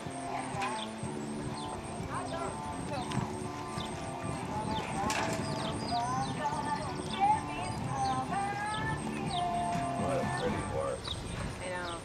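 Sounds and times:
background music: 0.0s - 12.0s
voices: 0.0s - 12.0s
horse hoofbeats on dirt: 0.4s - 12.0s.

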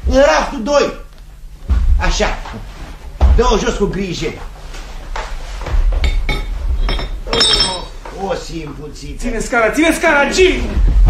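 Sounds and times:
low rumble: 1.6s - 2.4s
objects knocking and clinking: 6.0s - 8.0s.

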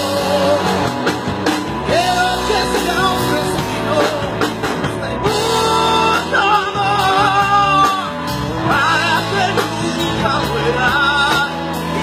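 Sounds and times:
drums: 0.0s - 12.0s
electric guitar: 0.0s - 12.0s
man singing: 0.0s - 12.0s.

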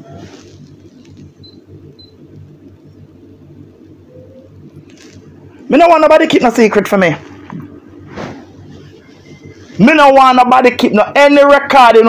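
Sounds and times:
faint low background hum: 0.0s - 12.0s.

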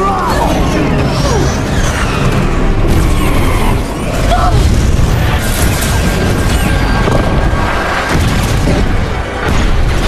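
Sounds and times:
dramatic score music: 0.0s - 10.0s.

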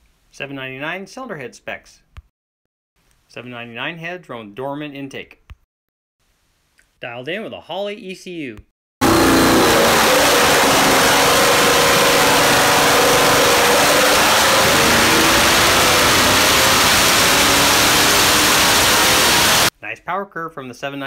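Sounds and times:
engine running at full throttle: 9.0s - 19.7s.

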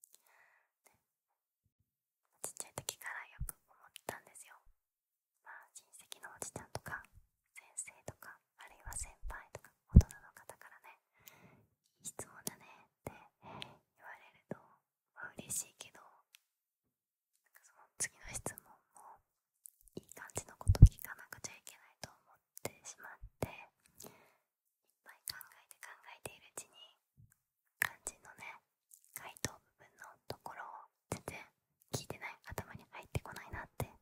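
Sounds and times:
woman whispering: 2.3s - 4.7s, 5.4s - 11.1s, 12.0s - 16.4s, 17.5s - 19.2s, 19.9s - 23.8s, 25.0s - 27.0s, 27.8s - 34.0s.

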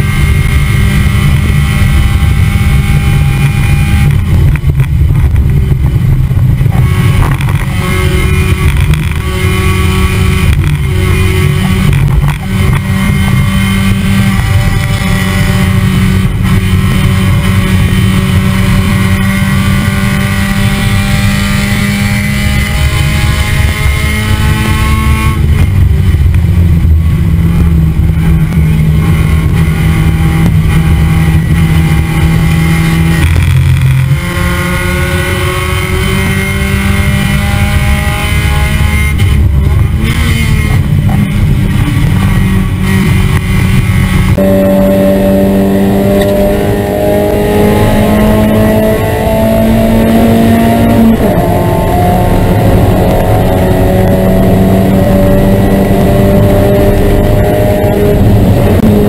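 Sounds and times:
race car engine at high revs: 0.0s - 59.0s.

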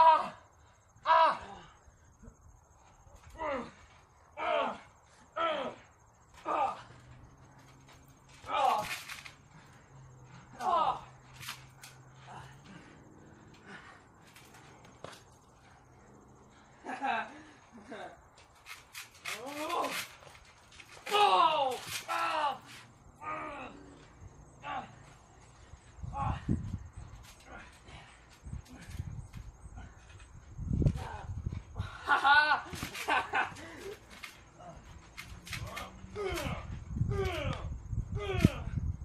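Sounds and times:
bodies thudding on trampoline: 3.1s - 15.7s.

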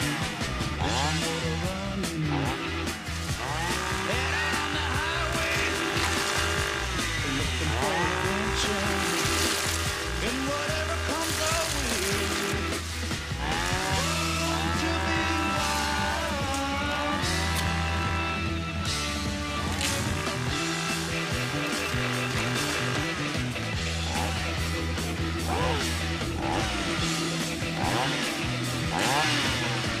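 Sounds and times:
chainsaw engine revving: 0.0s - 30.0s
music with steady bass line: 0.0s - 30.0s.

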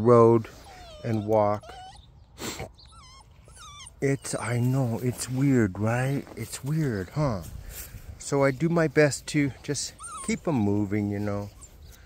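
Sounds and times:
puppy whimpering: 0.5s - 7.2s, 9.6s - 12.0s.

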